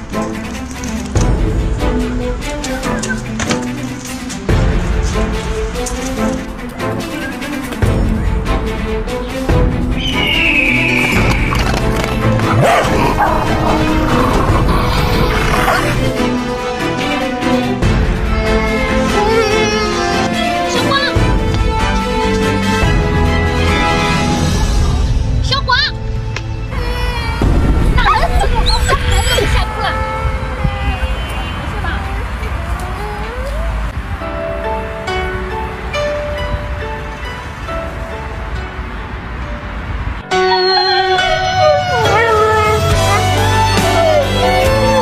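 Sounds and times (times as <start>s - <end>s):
background music: 0.0s - 45.0s
dog barking: 12.4s - 15.9s
small child crying: 18.4s - 21.1s, 26.7s - 31.2s, 32.4s - 34.0s, 40.4s - 45.0s
high tone sliding downward: 40.3s - 43.1s.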